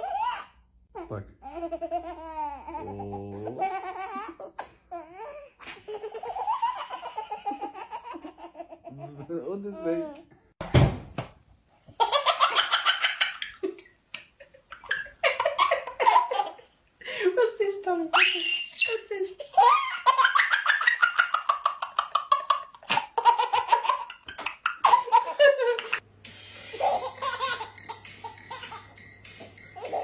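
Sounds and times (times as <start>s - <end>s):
baby laughing: 0.0s - 10.2s, 12.0s - 13.9s, 14.7s - 16.7s, 18.2s - 26.0s, 26.7s - 28.9s, 29.8s - 30.0s
woman laughing: 13.5s - 16.4s, 25.0s - 26.0s.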